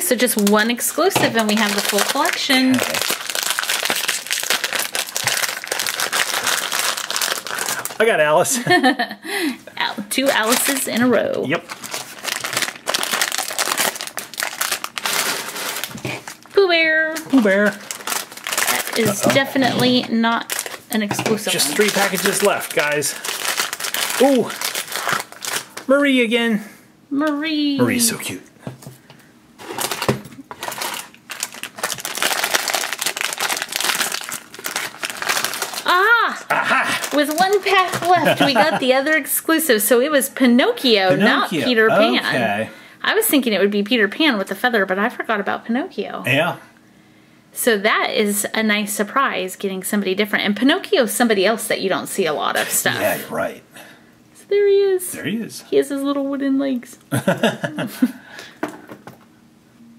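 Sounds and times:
foil packet crinkling: 0.1 - 8.1, 10.1 - 25.9, 29.6 - 39.3.

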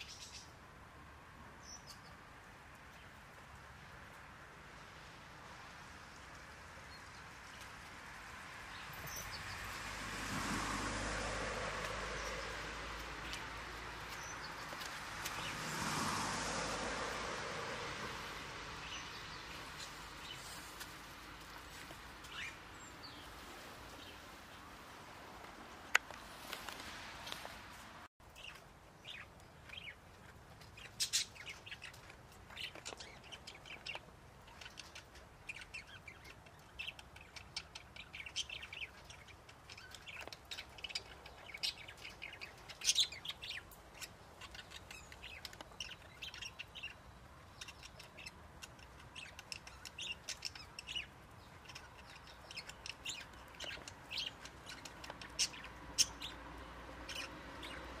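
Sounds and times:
small birds chirping: 0.0 - 58.0.

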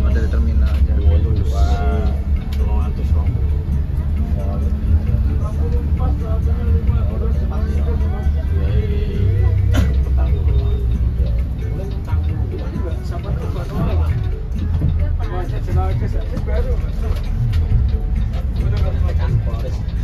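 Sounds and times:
bus engine rumbling: 0.0 - 20.0.

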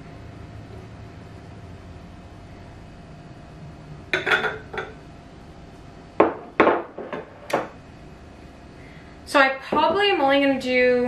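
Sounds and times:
glassware clinking on counter: 4.1 - 5.0.

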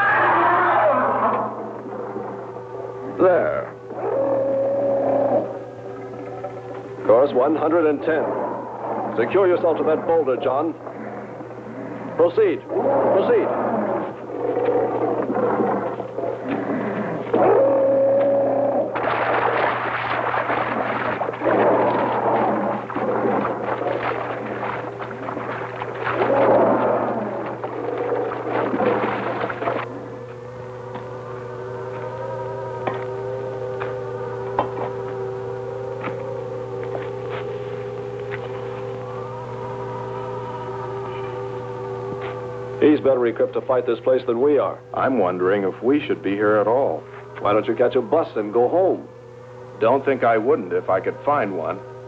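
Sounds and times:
churning water effects: 0.0 - 52.0
electronic drone: 0.0 - 52.0.

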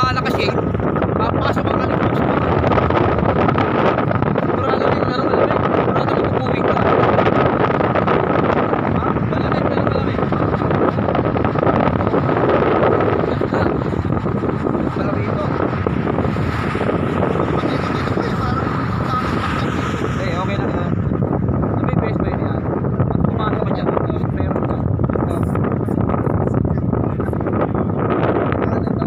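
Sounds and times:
car traffic: 0.0 - 29.0
wind buffeting microphone: 0.0 - 29.0.

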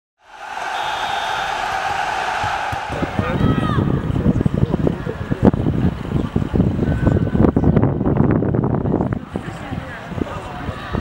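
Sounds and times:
steady rushing noise: 0.2 - 5.8.

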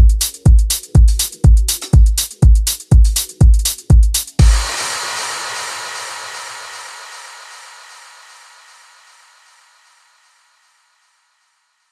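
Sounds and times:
kick drums: 0.0 - 4.8
house music noise wash: 0.0 - 11.9.

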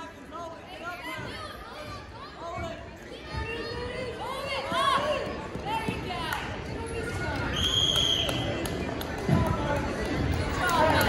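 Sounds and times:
spectators chattering: 0.0 - 11.0
whistle blast: 7.6 - 8.4.

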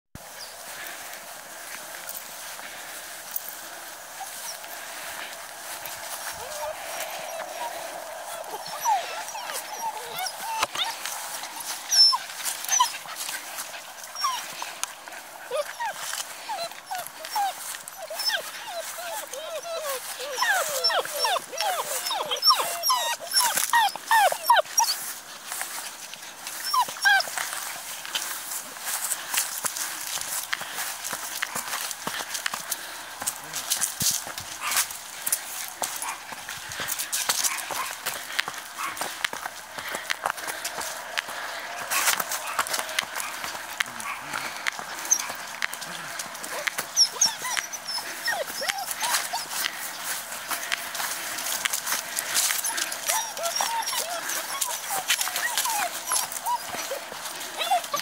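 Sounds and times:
small dogs rustling through grass: 0.2 - 58.0
puppies whining and yelping: 3.8 - 25.2, 26.0 - 28.2, 36.0 - 58.0.

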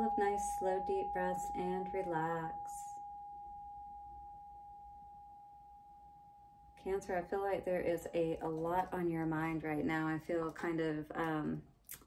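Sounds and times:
singing bowl ringing: 0.0 - 7.3.

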